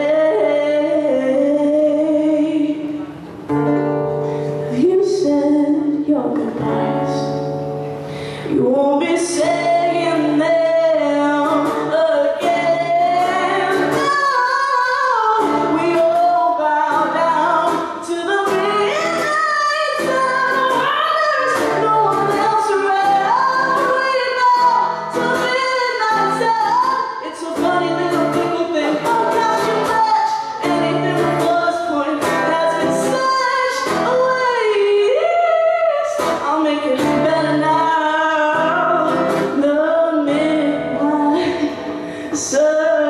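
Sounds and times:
woman singing: 0:00.0 - 0:07.8, 0:08.4 - 0:43.0.

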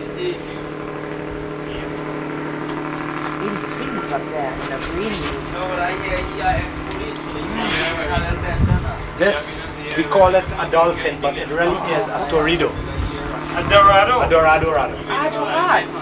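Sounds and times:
engine humming steadily: 0:00.0 - 0:16.0.

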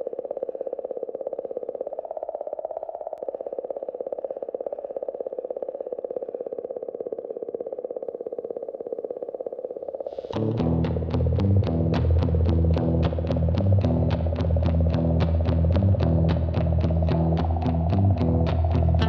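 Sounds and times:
midrange drone with rapid pulse: 0:10.3 - 0:19.0.

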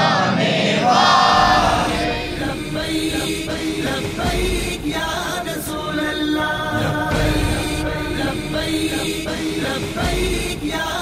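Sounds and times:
men chanting through microphone: 0:00.0 - 0:11.0.

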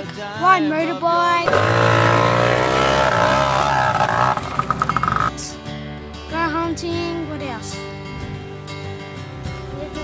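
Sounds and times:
dirt bike engine revving: 0:01.4 - 0:05.4.

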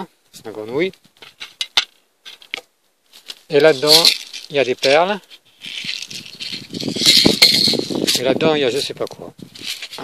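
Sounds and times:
beads rattling in plastic tube: 0:05.6 - 0:08.3.

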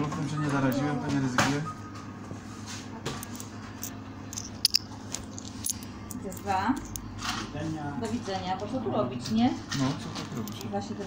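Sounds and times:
steady low hum: 0:00.0 - 0:11.0
coins clinking in a hand: 0:03.2 - 0:07.0.

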